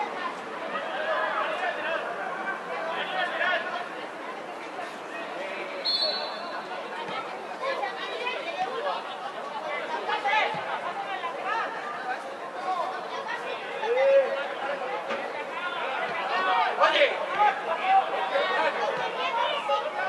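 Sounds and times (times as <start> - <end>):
voices calling out and chatting: 0.0 - 20.0.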